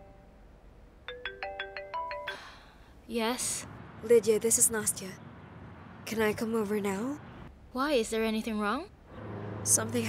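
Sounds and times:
smartphone ringtone melody: 0:01.1 - 0:02.5.

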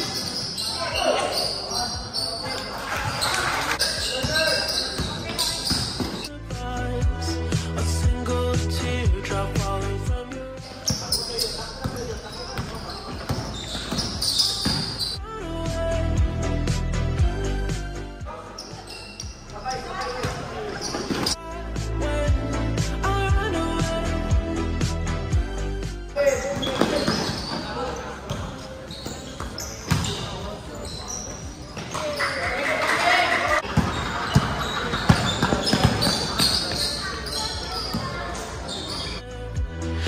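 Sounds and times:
high squeaking: 0:00.0 - 0:06.3, 0:10.6 - 0:15.2, 0:18.4 - 0:21.4, 0:26.2 - 0:32.6, 0:33.9 - 0:39.2
crowd noise: 0:00.0 - 0:15.2, 0:17.2 - 0:23.6, 0:26.4 - 0:39.9
music with steady beat: 0:06.3 - 0:10.6, 0:21.4 - 0:26.2, 0:39.2 - 0:40.0
basketball dribbling: 0:33.6 - 0:38.2.

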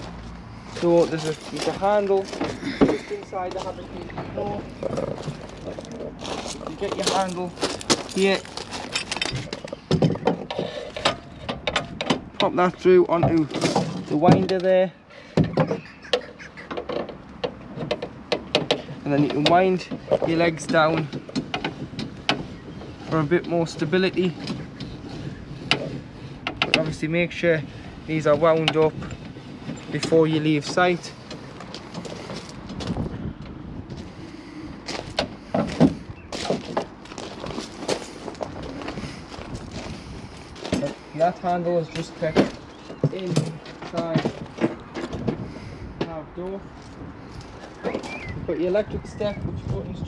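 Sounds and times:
footsteps on gravel: 0:00.0 - 0:09.9, 0:28.9 - 0:33.2, 0:33.8 - 0:45.2
metal handle clicking and clinking: 0:08.2 - 0:12.6.

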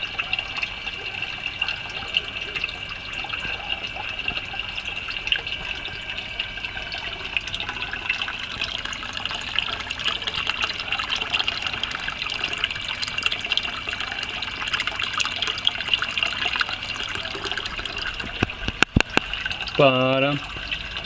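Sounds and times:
water splashing and bubbling: 0:00.0 - 0:21.0
small popping ticks: 0:18.3 - 0:19.3.

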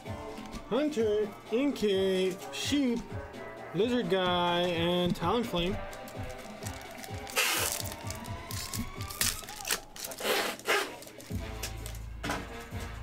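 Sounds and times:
background music with bass: 0:00.0 - 0:13.0
foil wrapper tearing and crinkling: 0:05.8 - 0:12.0.

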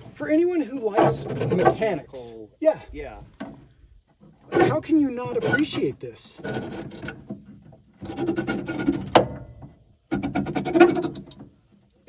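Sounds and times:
car window glass grinding: 0:04.5 - 0:09.4, 0:10.1 - 0:11.4.

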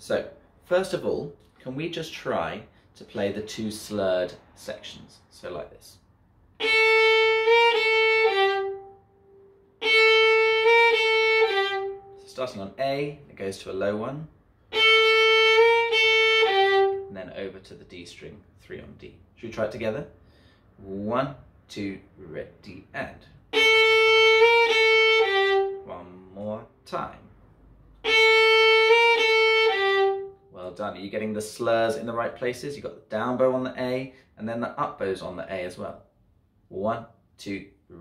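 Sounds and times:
solo violin phrase: 0:06.6 - 0:13.3, 0:14.7 - 0:17.6, 0:23.5 - 0:27.2, 0:28.0 - 0:30.8.

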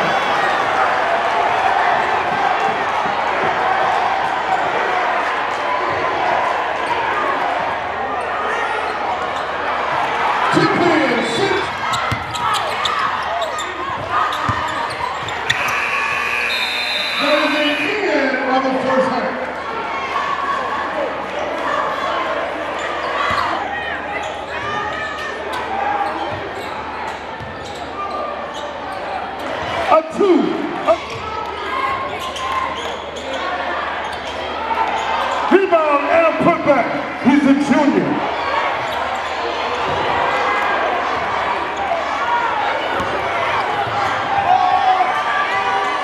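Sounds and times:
crowd chatter: 0:00.0 - 0:46.0
louder voices: 0:15.4 - 0:19.4.

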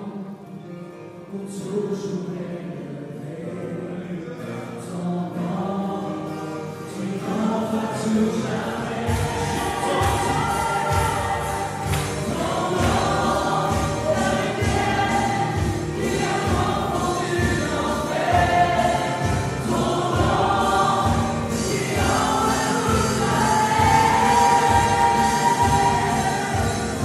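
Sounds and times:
acoustic guitar: 0:00.0 - 0:27.0
man singing: 0:01.2 - 0:27.0
drum kit beat: 0:09.1 - 0:27.0.

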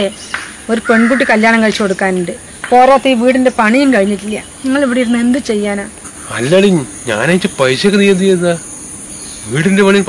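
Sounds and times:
crickets chirring: 0:00.0 - 0:10.0
man talking: 0:06.2 - 0:08.7, 0:09.4 - 0:10.0.

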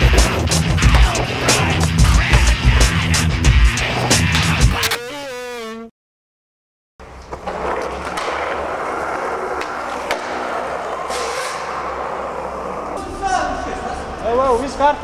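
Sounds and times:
skateboard wheels rolling on concrete: 0:00.0 - 0:04.6, 0:07.0 - 0:15.0.

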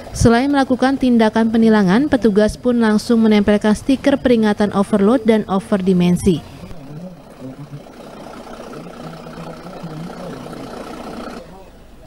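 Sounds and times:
truck engine idling: 0:00.0 - 0:12.0
faint voices: 0:04.6 - 0:12.0.

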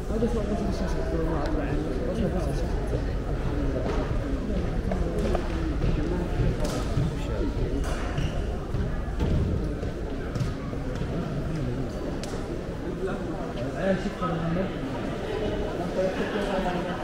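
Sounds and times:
crowd chatter echoing in hall: 0:00.0 - 0:17.0.

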